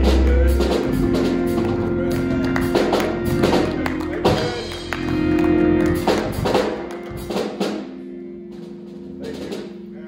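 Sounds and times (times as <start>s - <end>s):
drum and cymbal hits: 0.0s - 10.0s
held keyboard chord: 0.0s - 10.0s.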